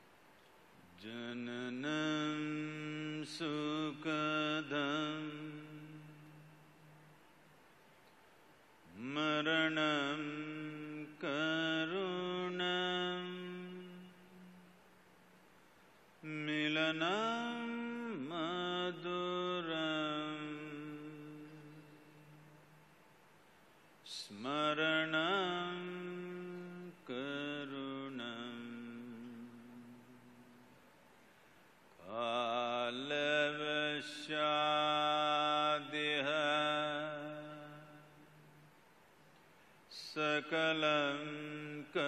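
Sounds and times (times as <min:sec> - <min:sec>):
man chanting in held notes: 0:00.8 - 0:07.1, 0:08.9 - 0:14.8, 0:24.0 - 0:30.7, 0:32.0 - 0:38.7, 0:39.9 - 0:42.0.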